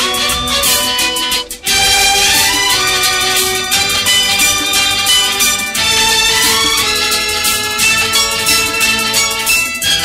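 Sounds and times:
instrumental film music: 0:00.0 - 0:10.0.

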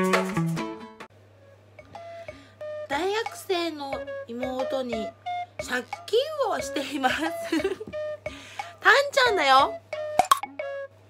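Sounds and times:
low steady hum: 0:01.1 - 0:11.0.

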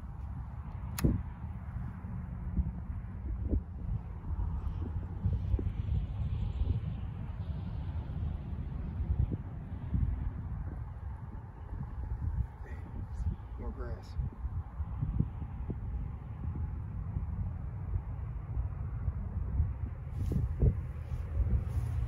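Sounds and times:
wind buffeting microphone: 0:00.0 - 0:22.0
sharp click: 0:00.9 - 0:01.2.

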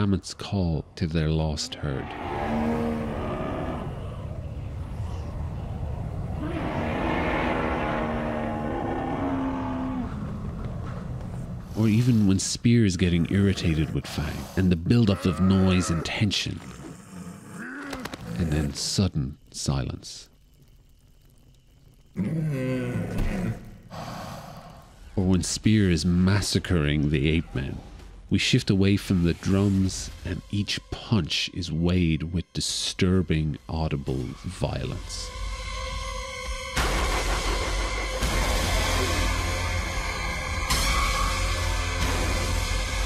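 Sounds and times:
low groaning grunt: 0:01.5 - 0:10.6, 0:13.1 - 0:18.9, 0:22.2 - 0:23.7
blizzard wind rushing: 0:02.0 - 0:12.3
mammoth calling: 0:13.0 - 0:20.0
breathy exhale: 0:23.9 - 0:25.0.

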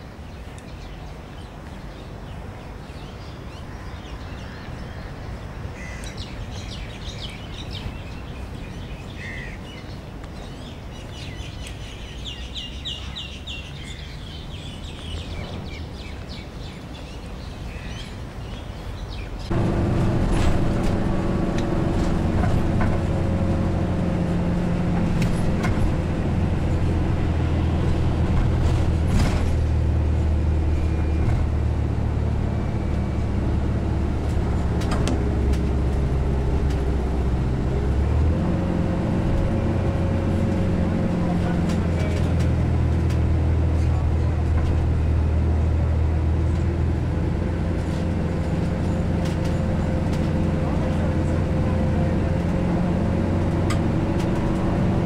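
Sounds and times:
engine and road hum: 0:00.0 - 0:55.0.

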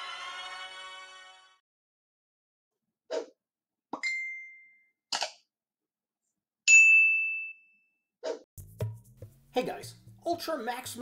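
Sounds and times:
high-pitched bell ding: 0:04.0 - 0:04.9.

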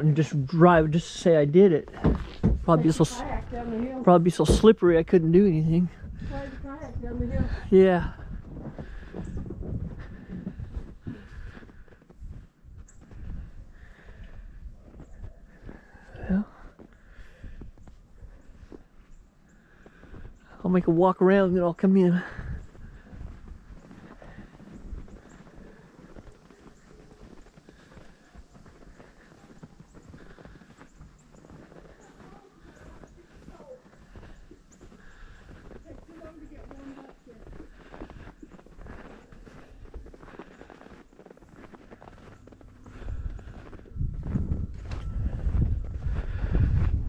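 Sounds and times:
footsteps crunching through snow: 0:00.0 - 0:47.0
wind buffeting microphone: 0:05.7 - 0:15.9, 0:22.3 - 0:27.8, 0:42.1 - 0:47.0.

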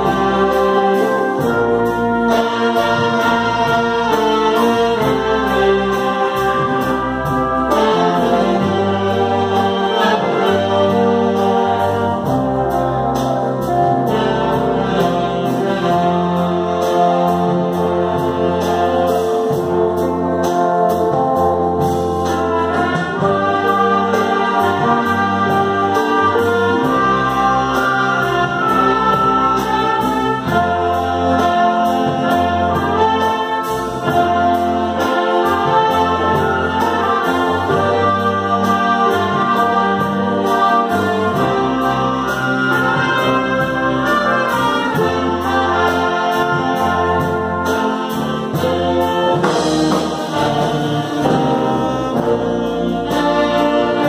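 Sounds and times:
wind band playing slow ballad: 0:00.0 - 0:54.0.

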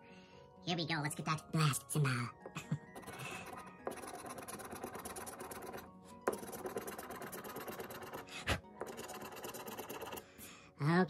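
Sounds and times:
faint background music: 0:00.0 - 0:11.0
coin scraping scratch-off ticket: 0:03.0 - 0:10.2.

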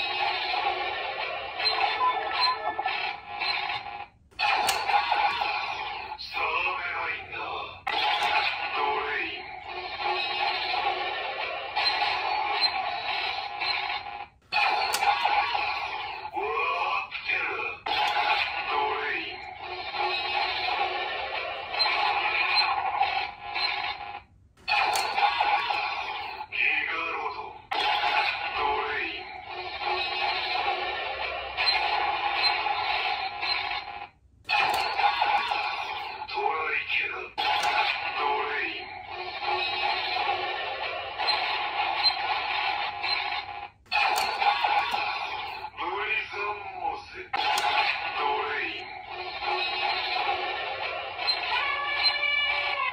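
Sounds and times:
synthesized toy music loop: 0:00.0 - 0:07.1, 0:07.9 - 0:23.9, 0:24.6 - 0:27.0, 0:27.8 - 0:33.8, 0:34.5 - 0:36.6, 0:37.4 - 0:52.8.

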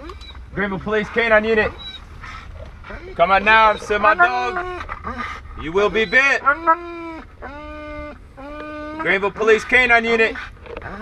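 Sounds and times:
dog whining: 0:01.4 - 0:09.7, 0:10.3 - 0:11.0.

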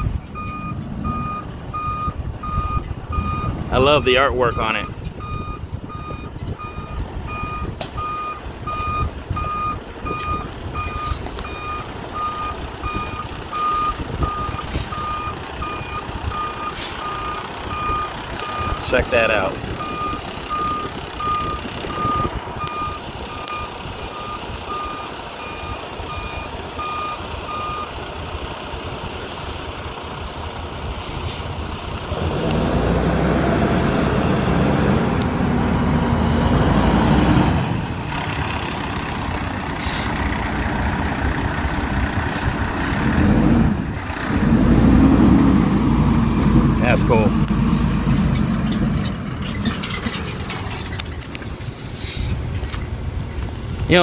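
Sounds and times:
truck back-up alarm beeping: 0:00.0 - 0:28.2, 0:37.9 - 0:51.0
diesel engine humming: 0:00.0 - 0:54.0.

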